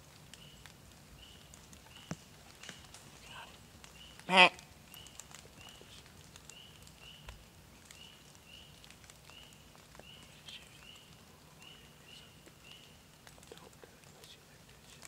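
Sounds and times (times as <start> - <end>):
light ticks: 0.1 - 15.0.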